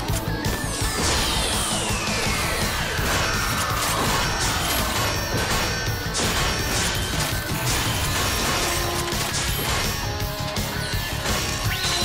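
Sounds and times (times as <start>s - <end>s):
music track: 0.0s - 12.0s
metallic clanks and crashes: 0.8s - 12.0s.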